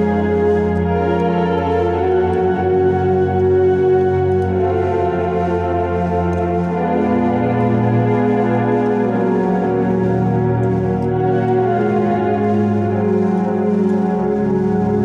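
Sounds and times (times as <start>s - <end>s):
keyboard playing sustained chords: 0.0s - 15.0s.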